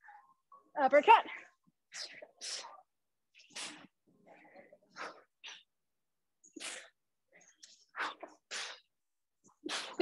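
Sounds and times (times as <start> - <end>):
sharp hissing exhalations: 1.9 - 4.0.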